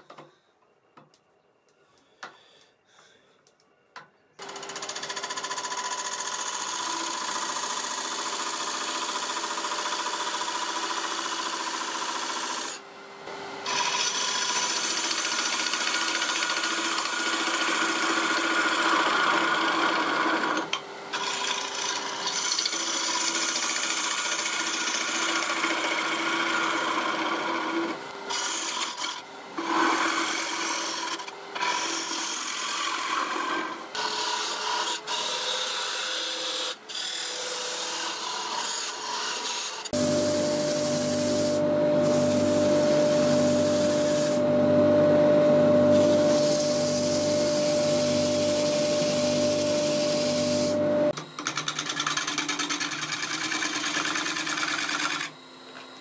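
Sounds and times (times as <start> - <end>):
lathe tool cutting wood: 6.1 - 12.8, 13.6 - 55.3
lathe humming: 13.7 - 20.6, 21.2 - 36.0, 39.5 - 51.5.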